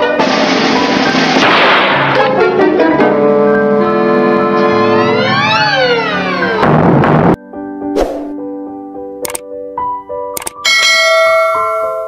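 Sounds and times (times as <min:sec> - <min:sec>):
soft keyboard music: 0:07.4 - 0:12.0
mouse click: 0:09.2 - 0:09.4, 0:10.4 - 0:10.6.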